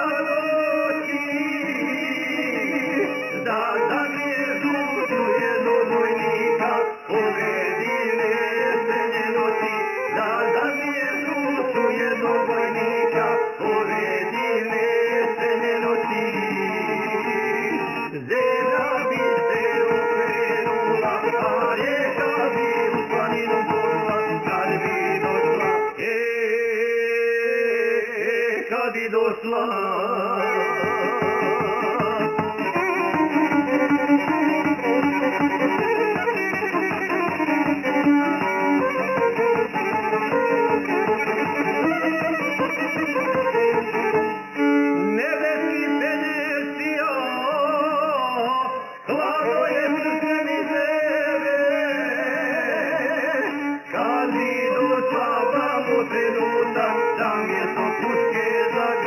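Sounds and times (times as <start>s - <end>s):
strummed lute: 0.0s - 26.4s, 30.0s - 59.0s
folk music with violin: 0.0s - 59.0s
man singing: 0.0s - 59.0s.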